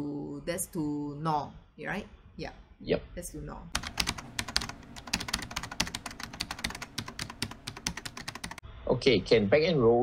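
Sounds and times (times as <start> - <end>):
computer keyboard key clicks: 3.8 - 8.6.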